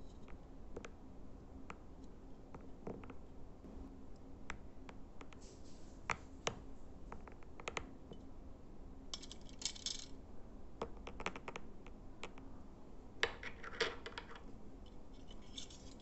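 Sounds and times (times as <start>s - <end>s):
fingers tapping a small box: 10.8s - 12.5s.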